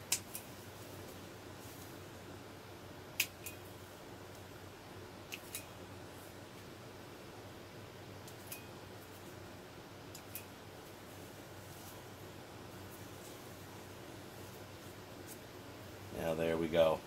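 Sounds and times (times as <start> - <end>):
low steady hum: 0.0 - 17.0
pruning snips clicking: 0.1 - 0.5, 3.2 - 3.7, 5.3 - 5.7, 10.1 - 10.5.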